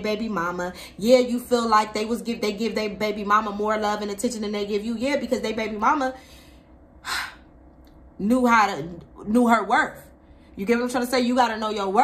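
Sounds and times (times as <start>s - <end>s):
woman speaking: 0.0s - 6.2s, 8.2s - 12.0s.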